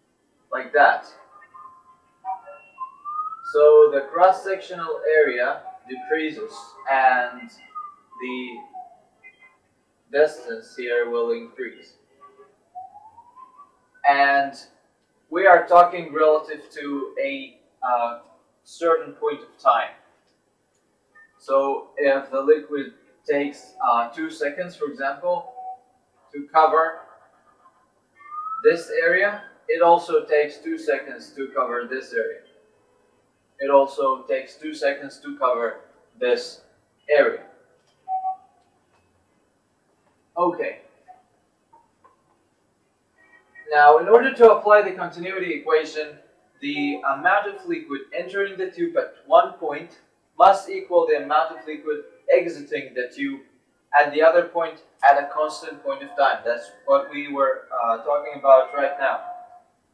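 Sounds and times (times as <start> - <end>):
marker squeaking on a whiteboard: 0.8 - 4.1, 11.6 - 14.2, 26.8 - 29.6, 37.2 - 39.2, 56.0 - 59.6.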